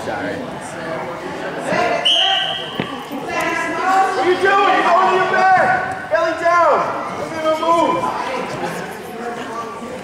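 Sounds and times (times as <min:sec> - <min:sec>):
voices in a gym: 0:00.0 - 0:10.0
referee's whistle blast: 0:02.0 - 0:02.8.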